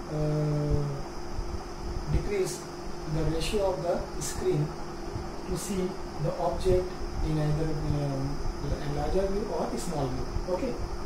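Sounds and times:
man humming hesitation sound: 0.0 - 1.1.

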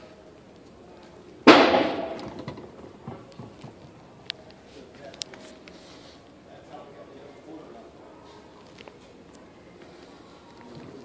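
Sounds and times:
sudden loud bang: 1.5 - 2.6.

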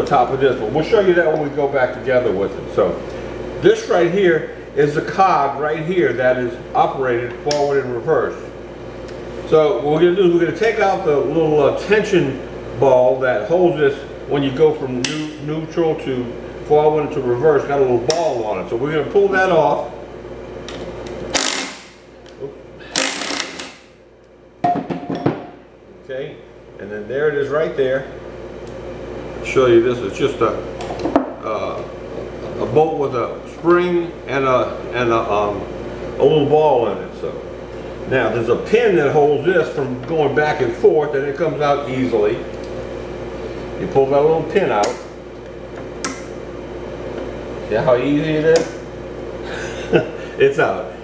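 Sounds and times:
low steady hum: 0.0 - 51.0
cordless power driver running: 20.6 - 24.0.

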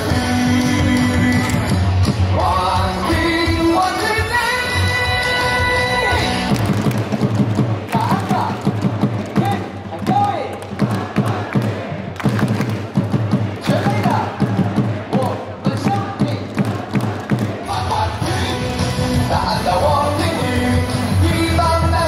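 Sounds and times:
cheer song over stadium speakers: 0.0 - 22.0.

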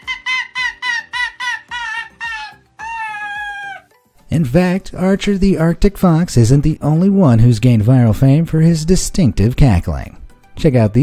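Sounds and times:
fox cackling: 0.0 - 3.9.

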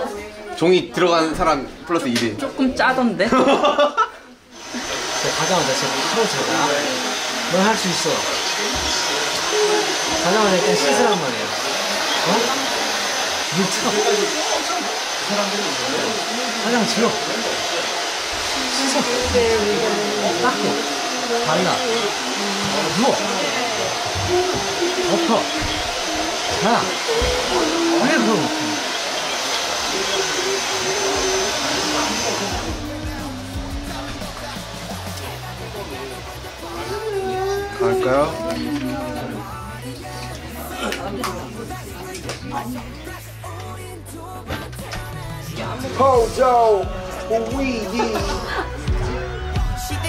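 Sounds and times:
faint voices: 4.1 - 50.0
hair dryer running: 4.5 - 42.4, 45.0 - 50.0
light background music: 31.3 - 50.0.

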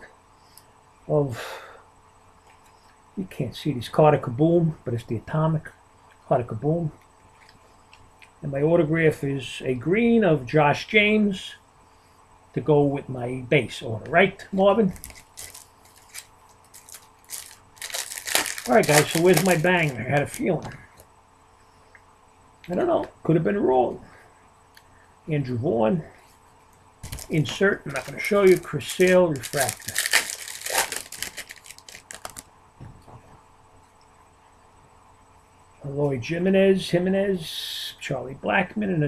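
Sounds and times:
trading cards and wrappers rustling: 14.7 - 21.1, 27.0 - 32.5.

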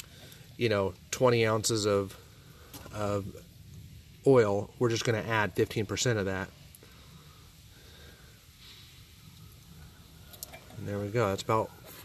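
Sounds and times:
soft hiss: 0.0 - 12.0.

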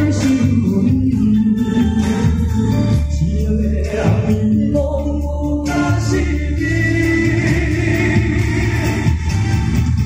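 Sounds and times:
man singing a ballad: 0.0 - 9.2
amplified backing music: 0.0 - 10.0.

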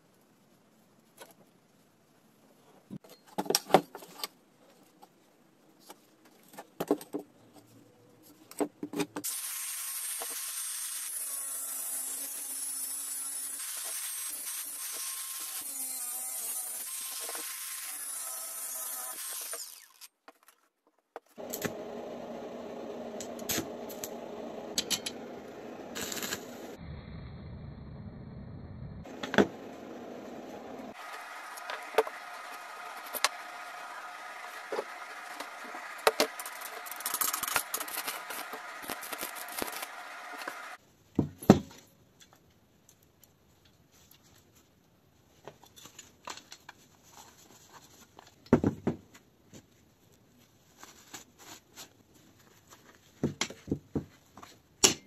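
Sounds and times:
power tool working metal: 30.8 - 40.8.

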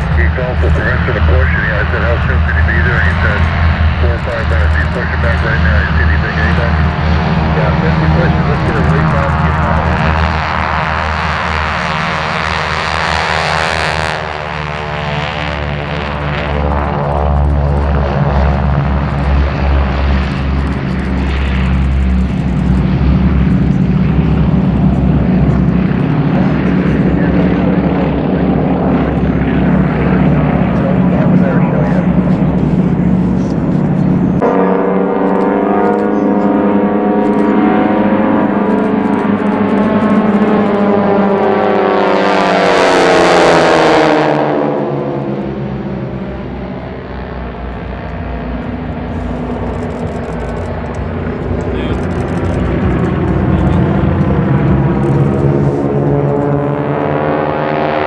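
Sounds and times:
propeller planes drone: 0.0 - 58.0.

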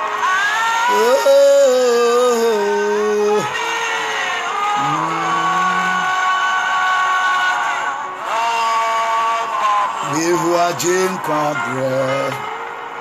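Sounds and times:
man singing: 0.0 - 12.5
musical accompaniment: 0.0 - 13.0.

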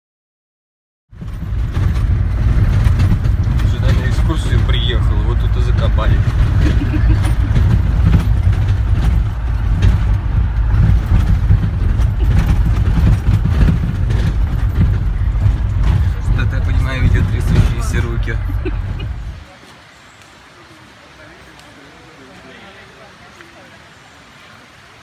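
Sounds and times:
vehicle cabin rumble and rattling: 1.1 - 19.4
knocks and jolts: 1.2 - 19.4.

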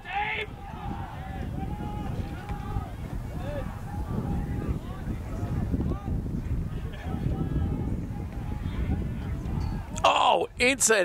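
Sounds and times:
distant players shouting: 0.0 - 10.3
wind rumble on microphone: 0.0 - 11.0.

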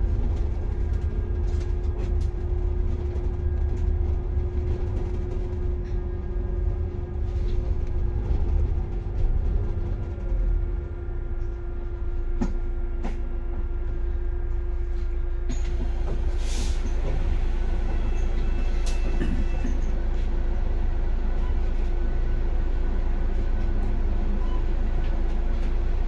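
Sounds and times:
bus cabin rumble: 0.0 - 26.0.

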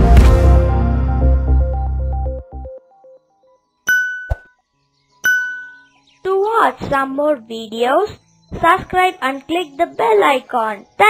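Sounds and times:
short low thump: 0.0 - 0.8
bright ding: 3.9 - 4.5, 5.2 - 5.9.

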